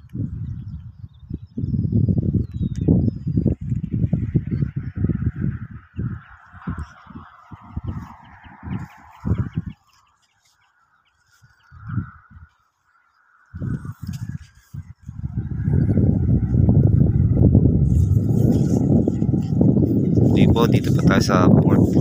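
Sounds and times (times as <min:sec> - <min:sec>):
birds calling: 0:00.0 - 0:22.0
wind buffeting microphone: 0:00.0 - 0:22.0.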